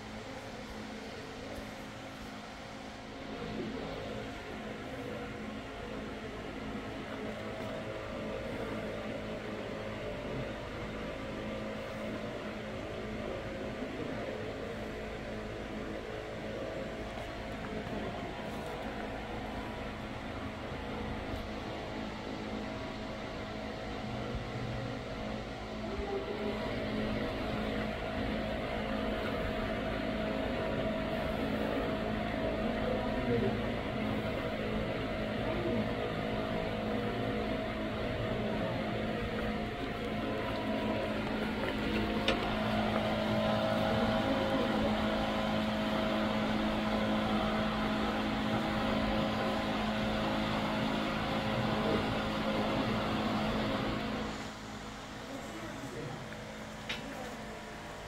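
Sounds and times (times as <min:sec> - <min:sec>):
mechanical hum with held tones: 0:00.0 - 0:58.0.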